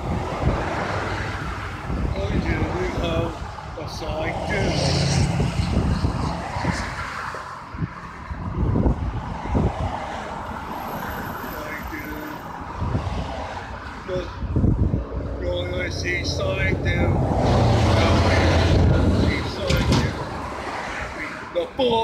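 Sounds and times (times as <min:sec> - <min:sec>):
cars passing on road: 0:00.0 - 0:22.0.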